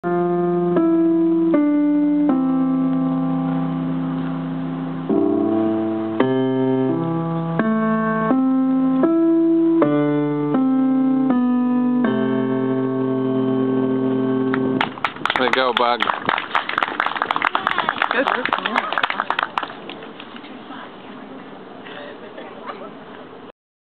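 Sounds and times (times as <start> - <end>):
electric keyboard slow tune: 0.0 - 14.9.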